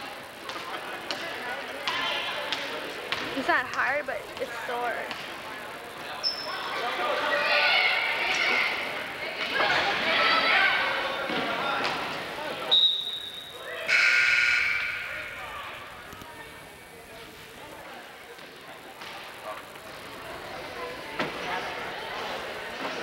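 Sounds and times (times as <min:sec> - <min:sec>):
crowd murmur: 0:00.0 - 0:23.0
crowd cheering and shouting: 0:06.4 - 0:12.8
referee's whistle: 0:12.7 - 0:15.4
scoreboard buzzer: 0:12.8 - 0:15.5.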